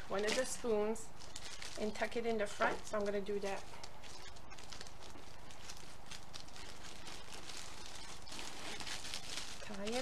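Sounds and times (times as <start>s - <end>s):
cellophane bag crinkling: 0.0s - 10.0s.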